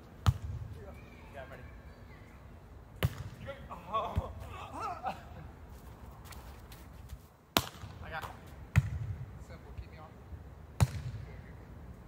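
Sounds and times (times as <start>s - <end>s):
volleyball hit by hand: 7.6s - 8.0s, 8.7s - 9.1s, 10.8s - 11.2s.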